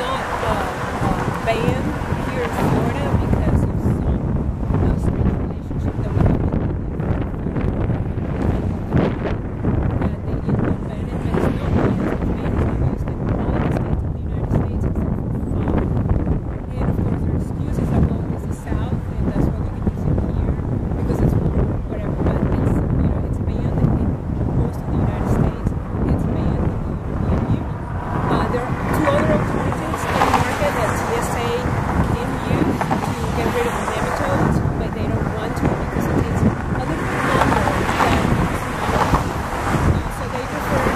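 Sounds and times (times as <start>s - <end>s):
woman speaking into microphone: 0.0s - 9.2s, 9.9s - 15.9s, 16.7s - 40.9s
wind buffeting microphone: 0.0s - 40.9s.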